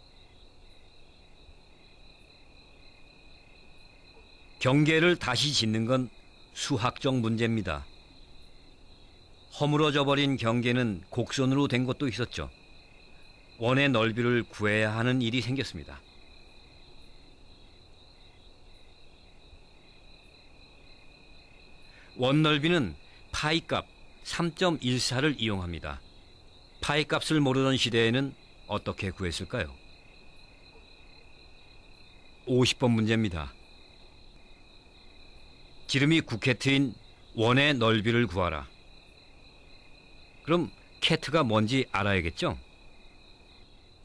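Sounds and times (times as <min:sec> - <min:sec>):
crickets trilling: 0:00.0 - 0:44.0.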